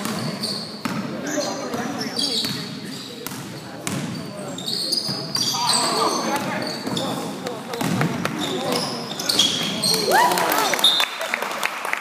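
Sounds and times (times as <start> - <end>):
shoe squeak: 0.0 - 7.4, 8.4 - 10.1.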